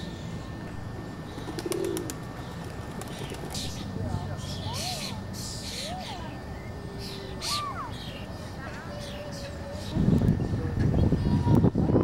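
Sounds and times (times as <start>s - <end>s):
harsh caw-like bird calls: 7.0s - 9.9s.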